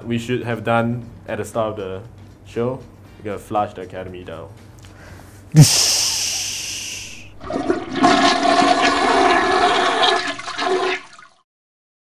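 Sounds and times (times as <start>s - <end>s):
toilet flushing: 5.8s - 11.4s.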